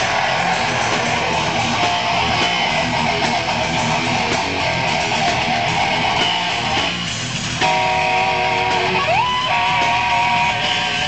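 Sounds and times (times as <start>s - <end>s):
electric guitar chord: 0.2s - 11.0s.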